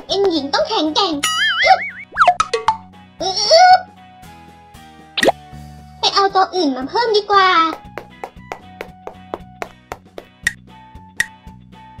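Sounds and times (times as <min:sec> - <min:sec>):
children's background music: 0:00.0 - 0:12.0
cartoon falling plop glide: 0:01.3 - 0:02.8, 0:05.2 - 0:05.4.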